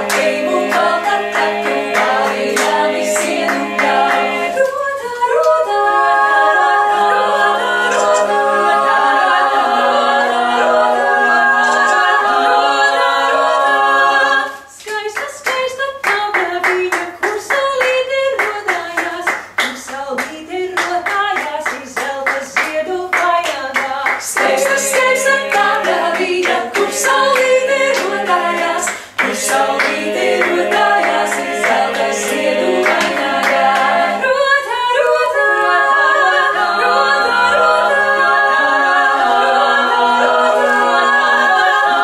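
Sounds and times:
hands clapping: 0.0 - 5.6, 14.7 - 34.1
women singing in harmony: 0.0 - 42.0.

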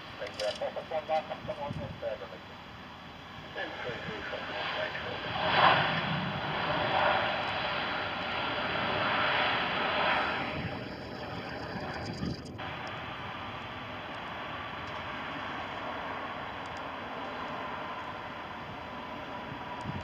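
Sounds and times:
jet engines rumbling: 0.0 - 20.0.

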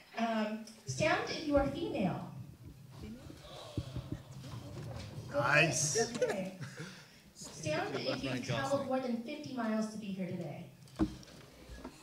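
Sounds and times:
chairs and feet thumping: 0.9 - 6.4, 10.8 - 12.0
murmuring voices: 0.9 - 9.3.

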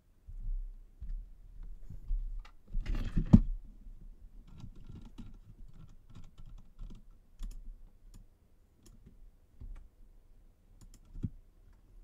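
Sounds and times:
computer keyboard typing: 4.5 - 9.9, 10.8 - 11.4.

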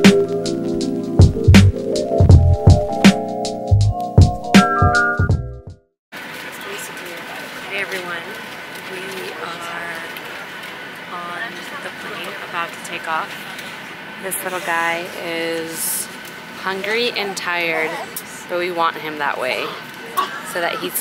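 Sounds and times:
intro music: 0.0 - 5.8.

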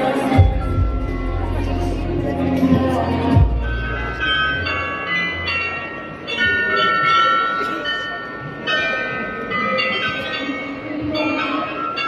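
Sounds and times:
glockenspiel bells playing tune: 0.0 - 12.0.

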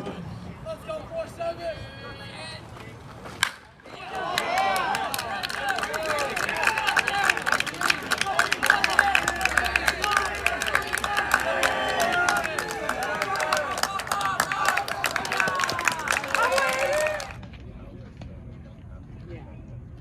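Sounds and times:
baseball bat cracking ball: 3.4 - 13.9
people clapping: 3.4 - 17.6
spectators shouting and cheering: 3.8 - 17.4.

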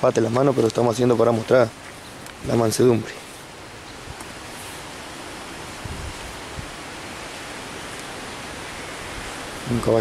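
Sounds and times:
rushing wind: 0.0 - 10.0.

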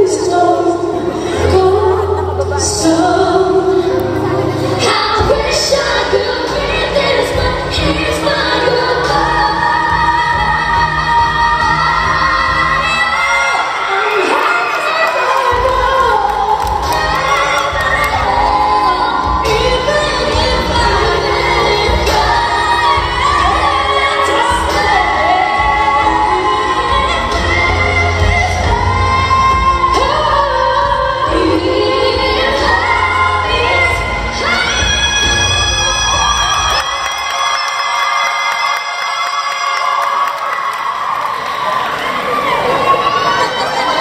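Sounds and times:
women singing in harmony: 0.0 - 36.8
crowd cheering: 12.3 - 20.0, 35.2 - 44.0
backing track: 15.3 - 37.7.

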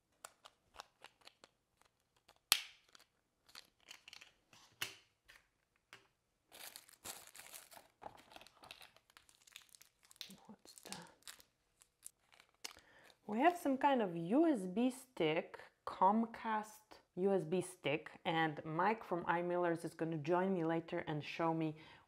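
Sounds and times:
paper crinkling and rustling: 6.5 - 13.2.

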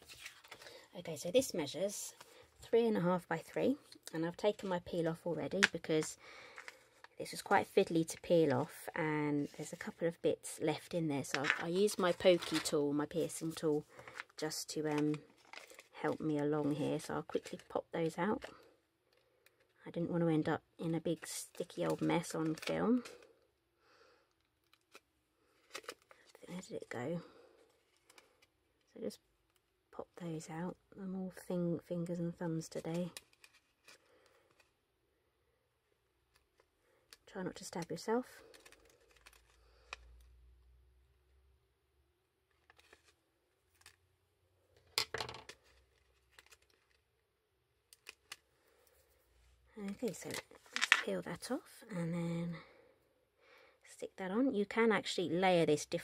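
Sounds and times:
soft rustle: 0.0 - 1.2
sticker sheet crinkling: 11.3 - 17.7.

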